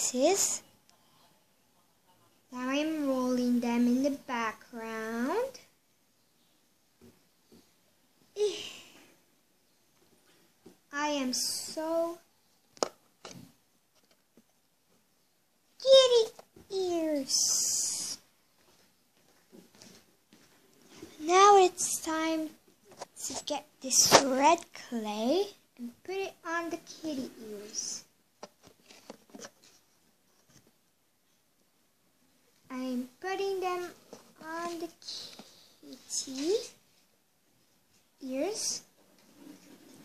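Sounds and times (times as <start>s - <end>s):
faint taps and rustles: 18.6s - 21.2s.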